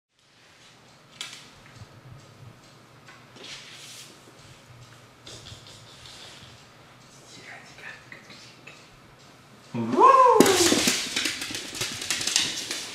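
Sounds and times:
skunk scuffling on floor: 3.4s - 6.6s, 10.5s - 12.9s.

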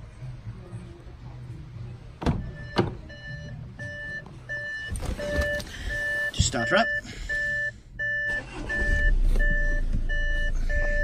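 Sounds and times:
car warning chime beeping: 2.4s - 11.0s.

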